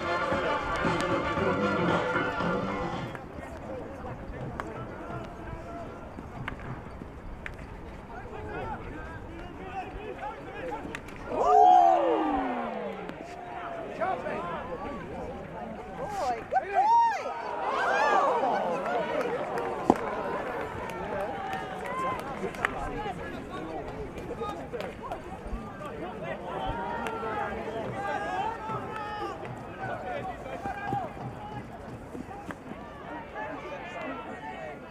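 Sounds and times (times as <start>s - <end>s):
players shouting: 0.0s - 6.8s, 7.6s - 34.9s.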